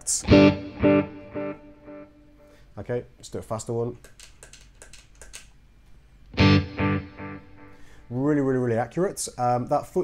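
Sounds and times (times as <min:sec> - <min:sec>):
electric guitar chord with echoes: 0:00.3 - 0:02.1, 0:06.4 - 0:07.9.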